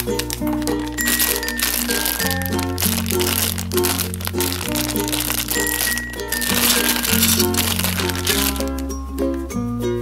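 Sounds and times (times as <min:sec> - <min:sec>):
plastic bag crinkling: 0:00.0 - 0:09.4
background music: 0:00.0 - 0:10.0.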